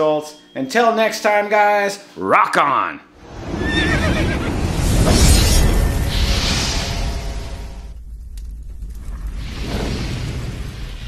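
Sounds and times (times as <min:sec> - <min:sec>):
music: 0:00.0 - 0:02.0
rushing hiss: 0:03.3 - 0:08.1, 0:09.0 - 0:11.0
horse whinny: 0:03.6 - 0:04.5
deep cinematic rumble: 0:04.4 - 0:11.0.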